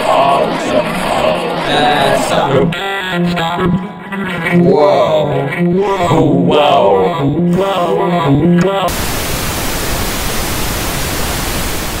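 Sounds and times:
television static hiss: 8.9 - 12.0.

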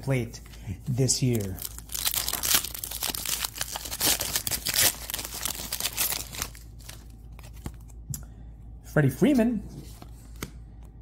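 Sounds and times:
plastic wrapper tearing and crinkling: 1.2 - 7.8.

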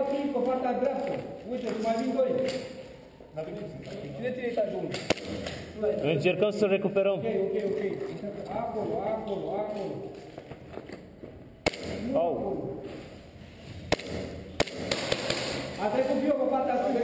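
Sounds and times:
men talking: 0.0 - 10.2, 12.0 - 13.0, 15.8 - 17.0
airsoft gun cracks: 4.9 - 5.7, 11.6 - 12.1, 13.9 - 15.8.

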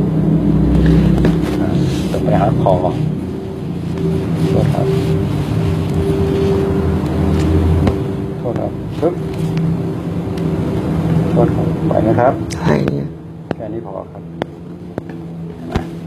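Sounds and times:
low mechanical hum: 0.0 - 16.0
person speaking: 4.2 - 7.3, 11.3 - 14.4.

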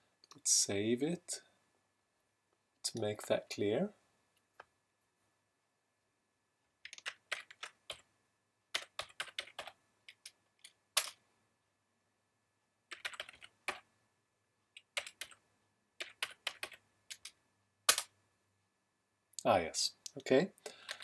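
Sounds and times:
keyboard keys clicking: 12.9 - 13.8.

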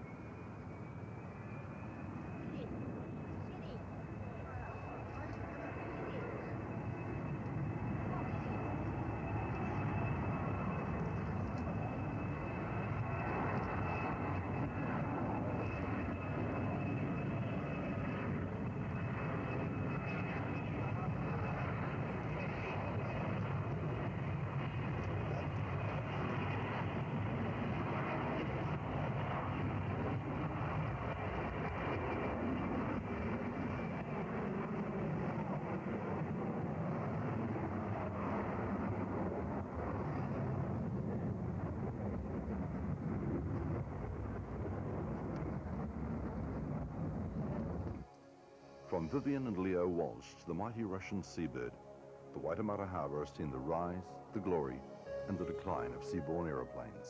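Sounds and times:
jet engines rushing: 0.0 - 32.0
high-pitched engine whine: 0.0 - 57.0.

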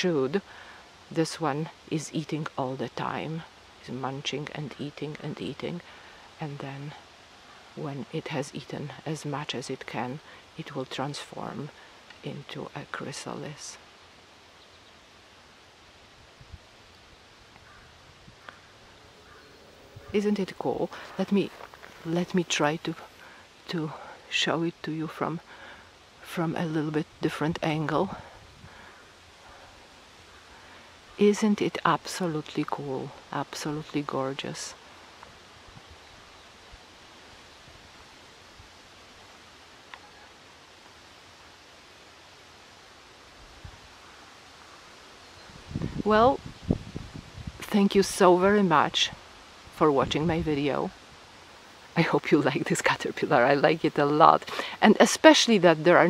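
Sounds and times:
faint outdoor background hiss: 0.0 - 56.0
light rustling: 18.4 - 23.3.

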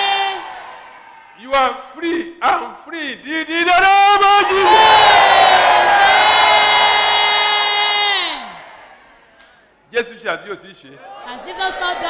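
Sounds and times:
crowd cheering: 0.0 - 1.6, 4.1 - 9.4, 11.0 - 12.0
person shouting a long cry: 6.8 - 8.5.

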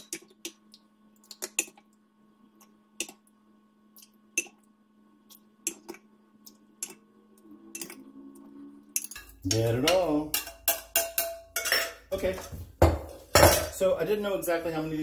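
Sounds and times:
faint steady hum: 0.0 - 15.0
ladle clinking against glass bowls: 9.0 - 12.0.

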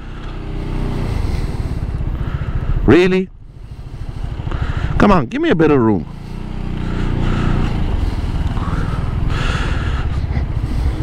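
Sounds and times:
scooter engine rumbling: 0.0 - 11.0.

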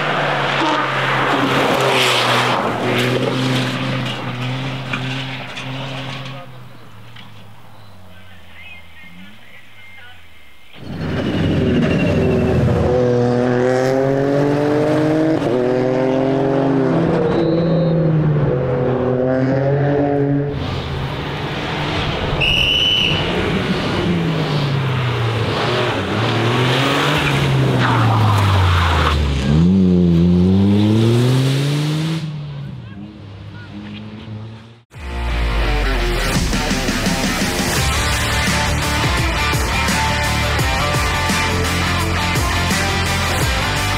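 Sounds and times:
rally car engine revving: 0.0 - 7.6, 10.8 - 22.4, 23.1 - 43.9.

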